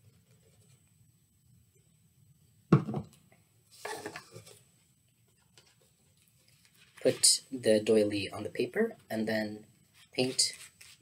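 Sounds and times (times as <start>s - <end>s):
plastic bottle knocking on wooden table: 2.7s - 3.1s.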